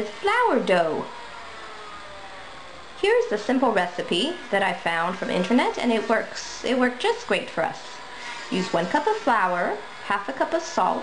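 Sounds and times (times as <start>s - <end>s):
faint even hum: 0.0s - 11.0s.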